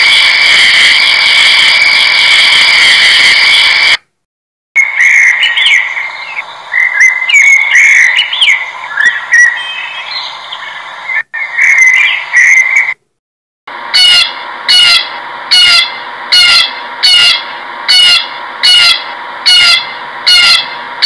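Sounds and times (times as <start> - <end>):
blackbird singing: 4.8 - 13.0
blue jay harsh calls: 4.8 - 13.0, 14.0 - 20.8.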